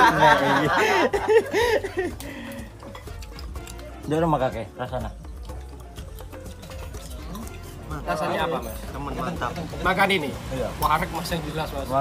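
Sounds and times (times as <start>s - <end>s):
faint background chatter: 0.0s - 12.0s
cutlery and dishes clinking: 2.0s - 11.8s.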